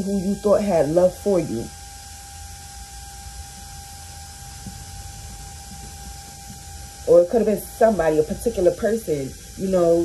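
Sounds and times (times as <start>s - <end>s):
low hum and hiss: 0.0s - 10.0s
thin constant tone: 0.0s - 10.0s.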